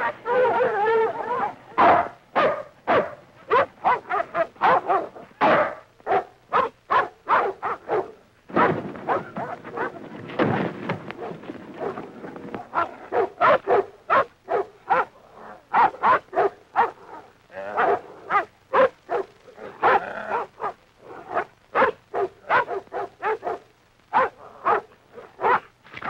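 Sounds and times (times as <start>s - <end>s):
dog barking: 0.0s - 10.0s, 11.2s - 12.0s, 12.7s - 25.7s.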